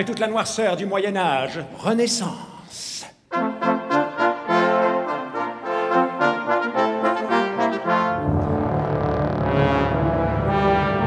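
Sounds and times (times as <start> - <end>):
brass quintet playing: 3.3 - 11.0.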